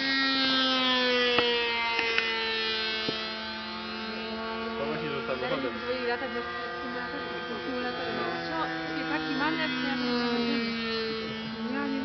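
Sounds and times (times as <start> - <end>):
model airplane motor buzzing: 0.0 - 12.0.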